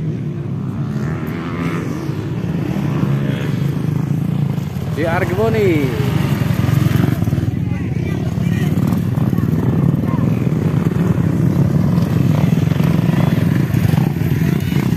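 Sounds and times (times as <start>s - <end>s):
dirt bike engines droning: 0.0s - 14.9s
faint voices: 7.1s - 14.9s.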